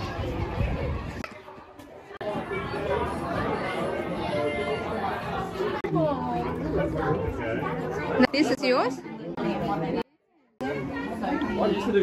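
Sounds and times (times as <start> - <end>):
people chattering: 0.0 - 12.0.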